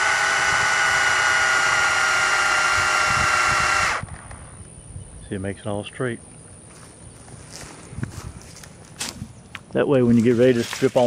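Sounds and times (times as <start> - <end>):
footsteps on dry leaves: 6.7 - 11.0.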